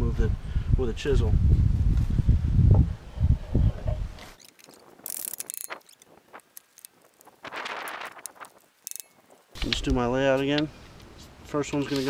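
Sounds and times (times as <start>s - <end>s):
wind rumbling on microphone: 0.0s - 11.4s
sharp clicks: 4.3s - 10.7s.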